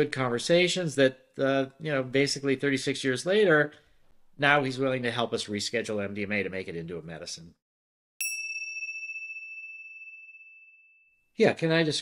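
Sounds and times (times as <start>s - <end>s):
high bell-like ding: 8.2s - 11.2s.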